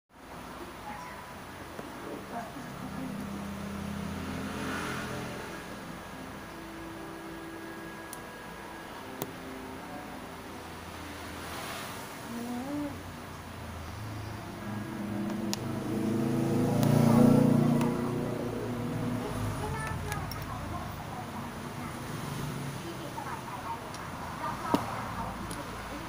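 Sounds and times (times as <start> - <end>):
vehicle engine humming: 0.2 - 26.0.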